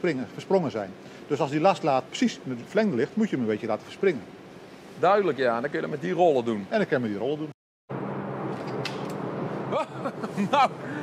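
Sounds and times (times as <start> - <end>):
low machinery hum: 0.0 - 11.0.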